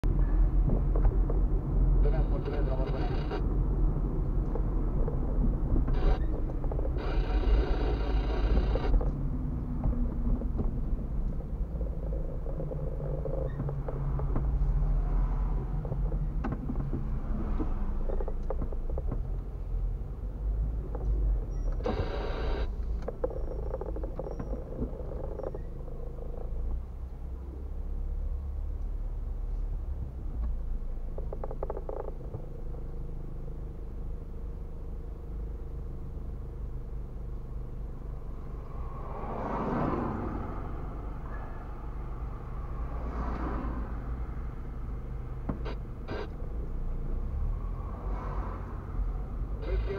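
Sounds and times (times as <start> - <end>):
car engine and tyres rumbling: 0.0 - 49.9.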